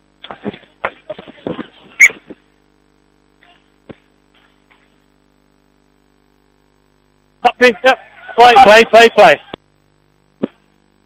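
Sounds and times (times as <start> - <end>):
faint radio hum: 0.0 - 11.0
microphone rustles: 0.1 - 2.6, 3.4 - 5.2.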